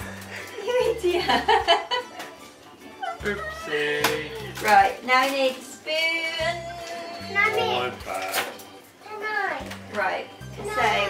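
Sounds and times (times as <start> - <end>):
child speaking: 7.2 - 8.0.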